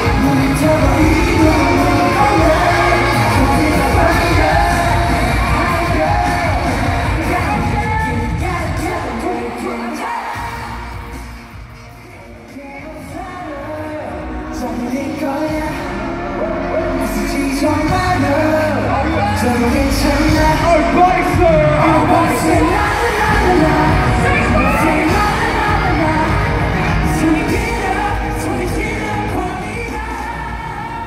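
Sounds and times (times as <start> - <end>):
live pop music with singing: 0.0 - 31.0.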